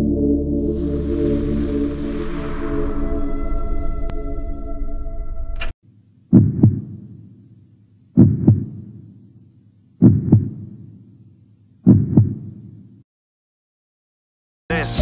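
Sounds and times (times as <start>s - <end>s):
ambient music chord: 0.0s - 5.6s
heartbeat thumps: 6.3s - 7.2s, 8.2s - 9.2s, 10.0s - 10.9s, 11.8s - 12.7s.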